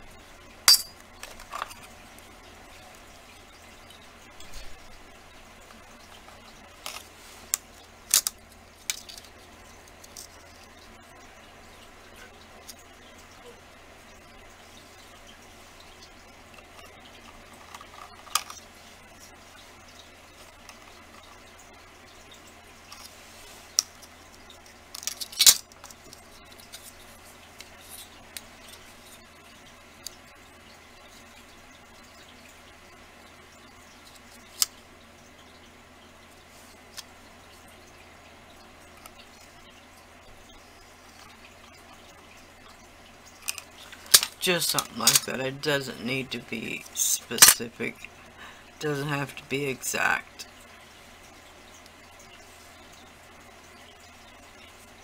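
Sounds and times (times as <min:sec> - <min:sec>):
faint low hum: 0:00.0 - 0:55.0.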